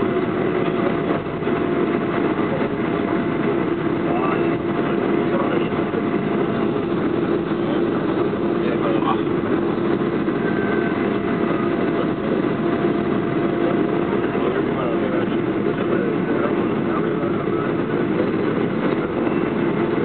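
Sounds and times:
airplane cabin engine hum: 0.0 - 20.0
faint passenger voices: 0.0 - 20.0.

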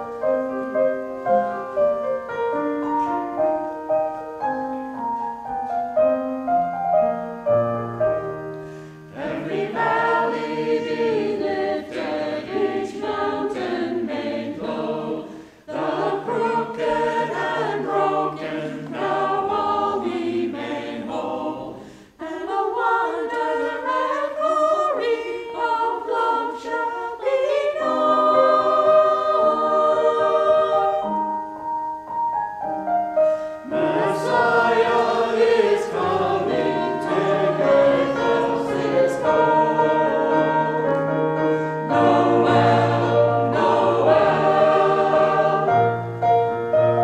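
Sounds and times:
mixed choir singing: 8.9 - 31.4, 33.5 - 47.0.

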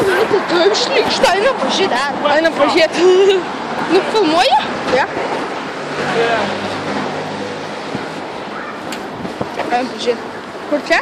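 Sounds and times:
wind on phone microphone: 9.0 - 9.7.

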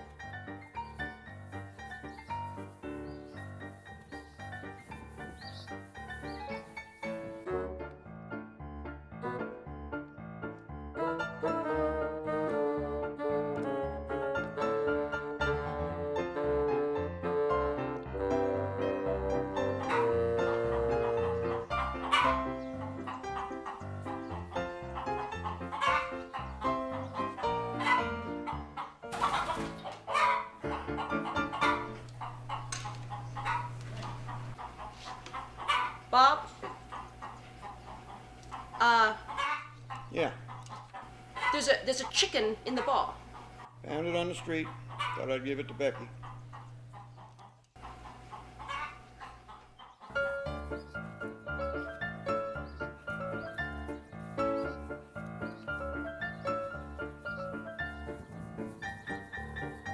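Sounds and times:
instrumental music with bass: 0.0 - 28.8, 50.2 - 59.9
chicken clucking: 19.7 - 59.9.

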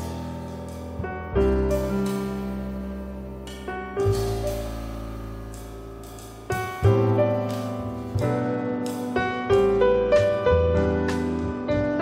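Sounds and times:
jazz piano trio playing: 0.0 - 12.0.

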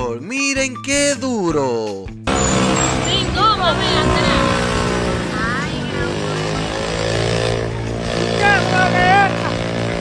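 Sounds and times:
motorcycle engine running loud: 2.3 - 10.0
people's voices: 2.9 - 7.4.

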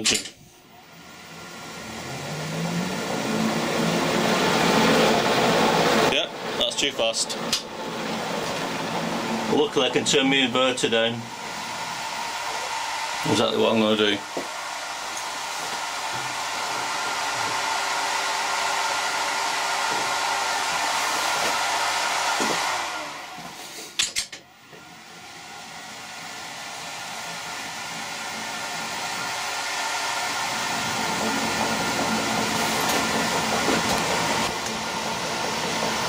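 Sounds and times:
lathe motor whirring: 0.6 - 36.0.

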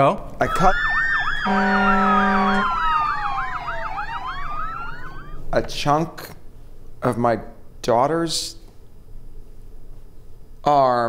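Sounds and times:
emergency vehicle siren: 0.4 - 5.4
horn blast: 1.4 - 3.8.

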